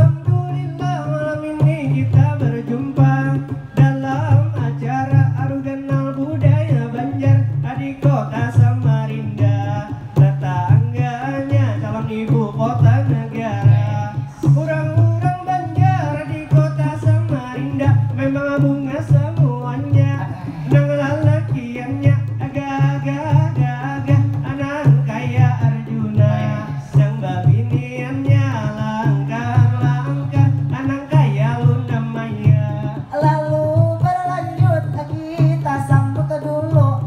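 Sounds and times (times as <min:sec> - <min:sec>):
frame drums beating: 0:00.0 - 0:37.0
man chanting rhymed verse: 0:00.0 - 0:37.0.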